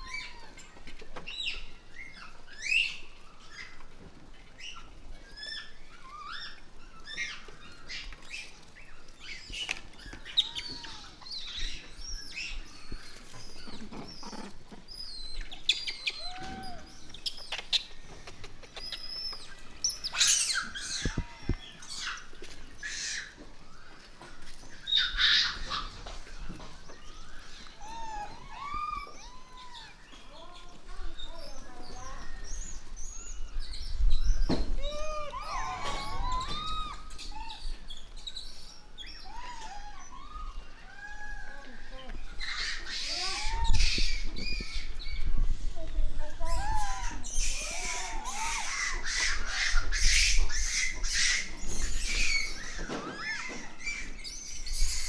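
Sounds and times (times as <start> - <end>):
monkeys coo calling: 9.3 - 30.7, 34.7 - 45.2, 46.4 - 55.0
monkey shrill squeals: 15.7 - 17.3, 18.8 - 21.3, 34.8 - 37.7.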